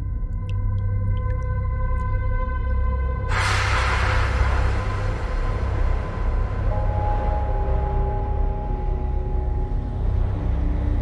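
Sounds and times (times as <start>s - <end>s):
faint water drips: 0.0s - 2.6s
deep steady rumble: 0.0s - 11.0s
held drone tone: 5.2s - 11.0s.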